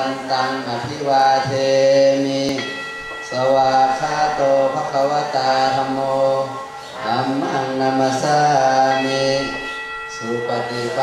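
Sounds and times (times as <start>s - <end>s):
man chanting: 0.0s - 11.0s
singing bowl ringing: 0.0s - 11.0s.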